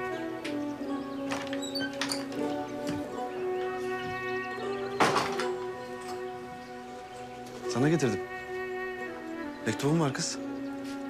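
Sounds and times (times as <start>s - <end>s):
slow sad music: 0.0s - 11.0s.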